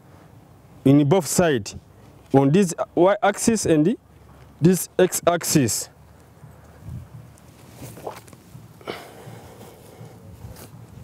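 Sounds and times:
footsteps on grass: 7.0 - 8.8, 9.4 - 11.0.

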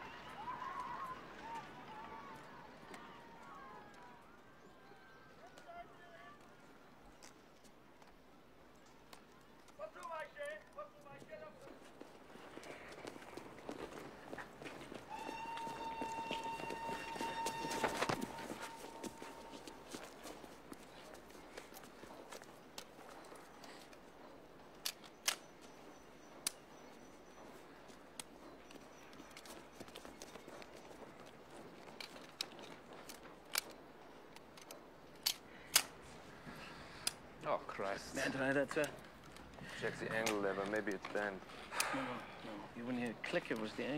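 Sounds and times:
long steady whistle: 15.1 - 19.8
handgun trigger clicks: 24.8 - 25.5, 32.0 - 36.0.

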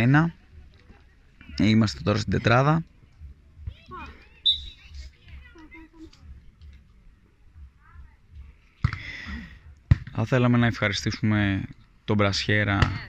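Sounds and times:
short chirps: 4.5 - 4.9.

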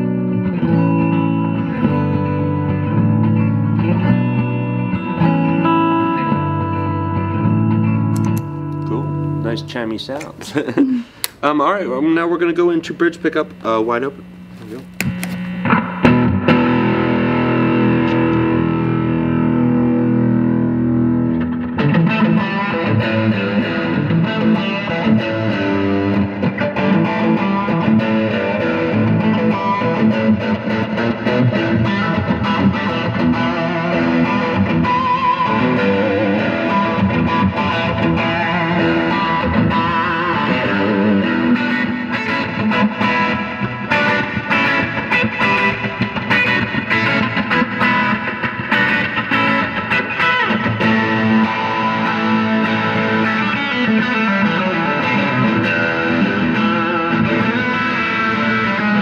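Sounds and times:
electric guitar through amp: 0.0 - 11.4, 12.4 - 59.0.

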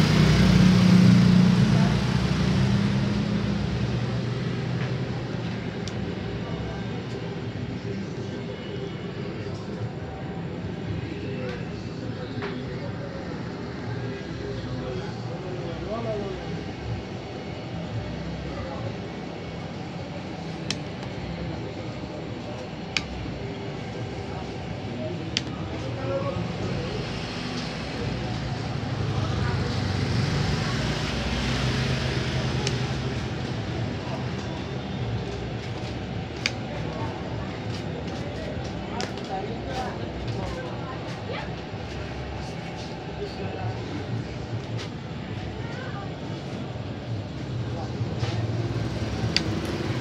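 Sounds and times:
indistinct background voices: 0.0 - 50.0
street traffic: 0.0 - 50.0.

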